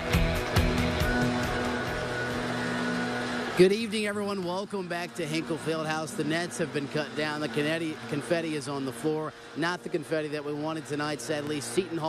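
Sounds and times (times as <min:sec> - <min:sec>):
sustained final chord: 0:00.0 - 0:03.6
theme music with beat: 0:00.0 - 0:03.6.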